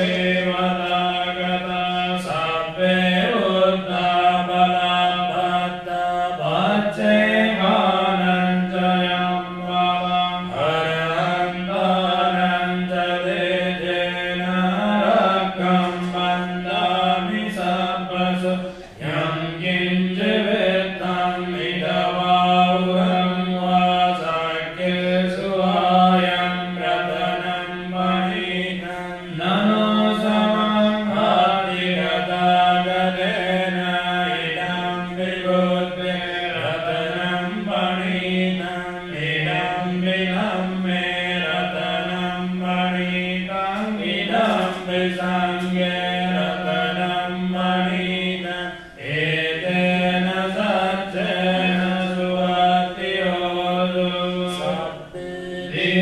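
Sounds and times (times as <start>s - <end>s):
monotone chanting: 0.0s - 56.0s.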